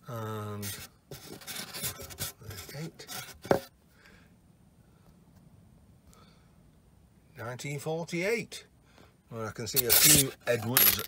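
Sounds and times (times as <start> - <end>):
coin rubbing on foam: 0.6 - 3.7, 9.7 - 11.0
sharp squeak: 9.8 - 11.0.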